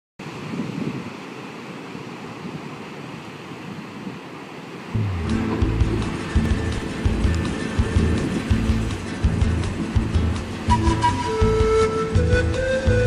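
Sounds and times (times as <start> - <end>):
waves breaking on rocks: 0.2 - 12.6
music with deep bass: 5.0 - 13.0.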